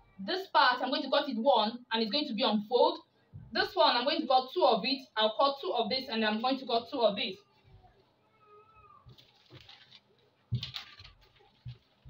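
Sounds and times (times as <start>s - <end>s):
faint animal cry: 7.5s - 9.2s
paper rustling: 9.0s - 12.0s.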